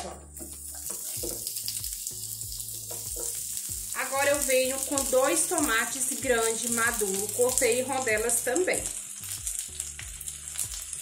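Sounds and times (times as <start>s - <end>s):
background music: 0.0s - 11.0s
food sizzling in a frying pan: 0.0s - 11.0s.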